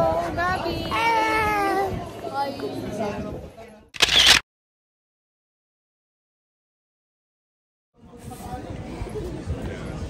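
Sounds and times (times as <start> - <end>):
sharp click-like burst: 4.0 - 4.4.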